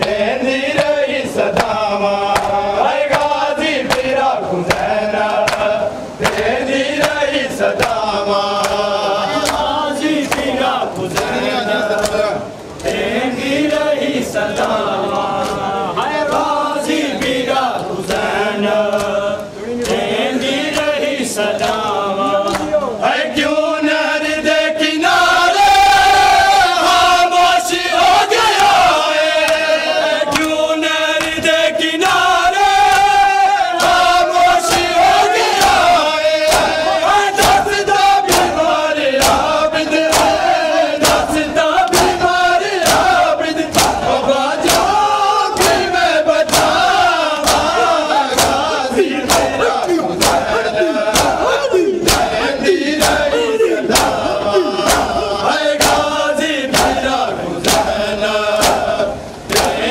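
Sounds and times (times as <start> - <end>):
men chanting in unison: 0.0 - 59.9
hands slapping bare chests: 38.3 - 38.6, 39.2 - 40.4, 41.0 - 42.2, 42.8 - 45.0, 45.6 - 45.9, 46.5 - 52.4, 53.0 - 53.3, 54.8 - 55.2, 56.7 - 57.0, 59.5 - 59.8.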